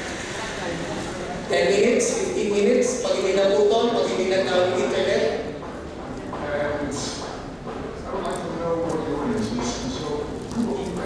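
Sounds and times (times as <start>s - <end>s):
speech echoing in large hall: 0.0s - 11.0s.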